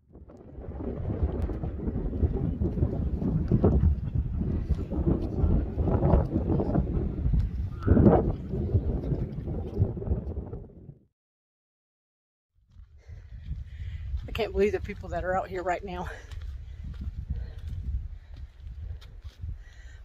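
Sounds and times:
wind buffeting microphone: 0.0 - 11.1, 12.7 - 20.0.

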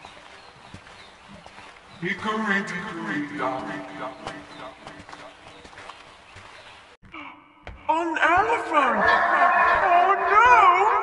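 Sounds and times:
cartoon voices and sound effects: 7.1 - 11.0.

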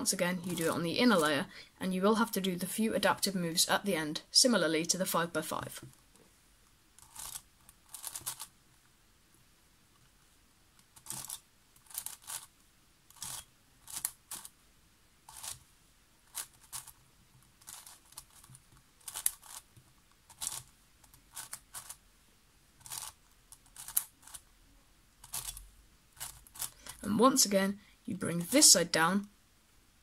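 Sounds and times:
puzzle cube layers clicking: 7.0 - 8.5, 17.6 - 19.7, 22.8 - 24.4.

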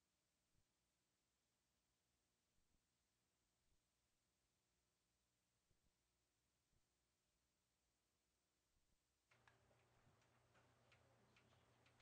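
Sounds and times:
faint low hum: 0.0 - 12.0
soft ticks: 9.3 - 12.0.

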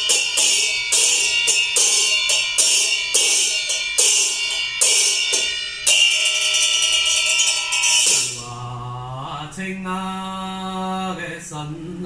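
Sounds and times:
handheld bell ringing: 0.0 - 8.6
man chanting long notes: 8.2 - 12.0.

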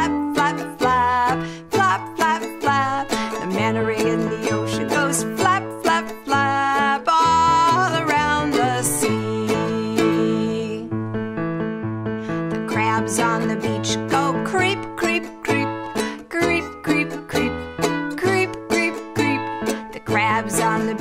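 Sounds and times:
strummed ukulele: 0.0 - 10.9, 12.2 - 21.0
woman singing: 0.0 - 11.0, 12.4 - 21.0.

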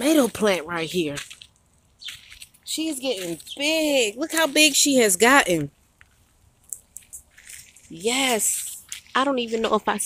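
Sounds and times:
phone rustling among leaves: 0.0 - 10.0.

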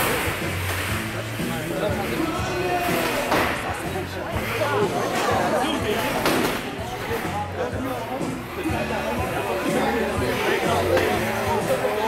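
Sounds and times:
background music: 0.0 - 12.0
crowd voices: 0.0 - 12.0.

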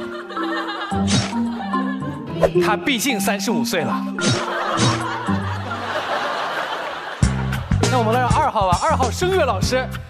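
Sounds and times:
studio audience laughing: 0.0 - 2.2, 4.2 - 8.6
background music: 0.0 - 10.0.

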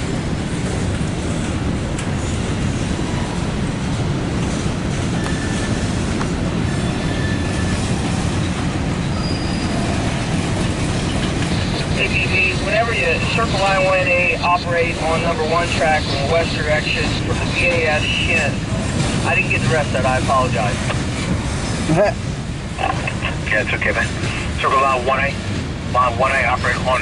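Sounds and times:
freight train wheels rumbling: 0.0 - 27.0
high wheel squeals: 5.2 - 5.9, 6.6 - 8.2, 9.0 - 10.1.

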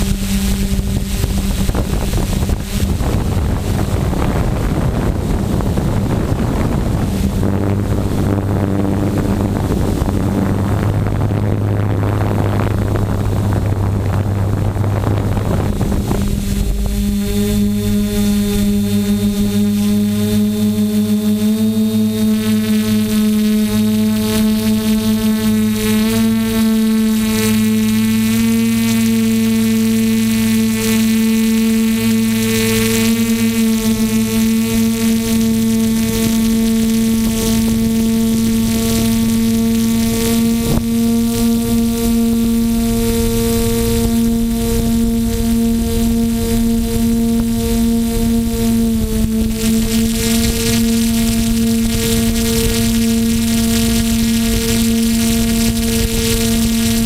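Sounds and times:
drone motors buzzing: 0.0 - 57.0.

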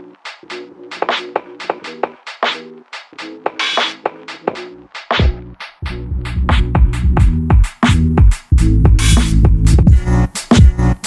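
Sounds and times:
hip hop beat: 0.0 - 11.0.

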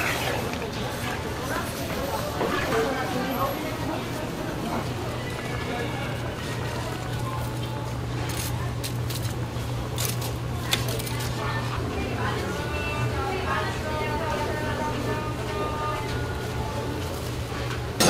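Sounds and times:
faint background voices: 0.0 - 18.0.

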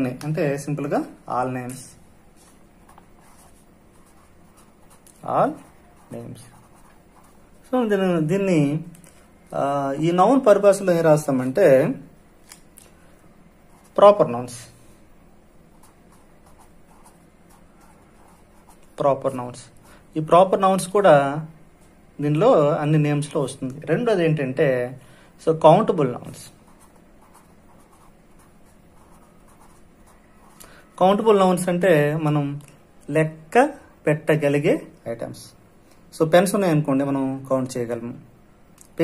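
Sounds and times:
marker pen scratching on paper: 1.7 - 7.8, 15.7 - 19.0, 26.5 - 31.4
man speaking: 5.2 - 6.7.

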